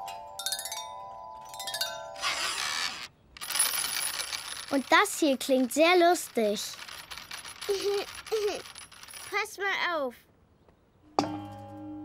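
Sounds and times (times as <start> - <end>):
metal washers jingling on rods: 3.4 - 9.8.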